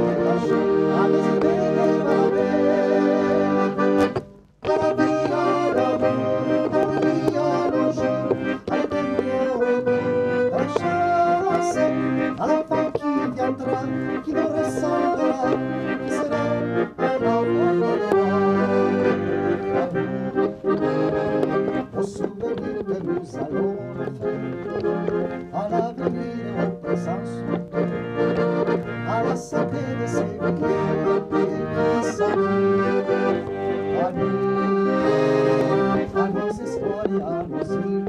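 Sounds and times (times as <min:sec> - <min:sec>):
man singing: 0:00.0 - 0:03.8, 0:04.6 - 0:19.1, 0:19.7 - 0:20.2, 0:21.7 - 0:27.6, 0:29.0 - 0:33.0, 0:33.9 - 0:38.0
accordion playing lively tune: 0:00.0 - 0:38.0.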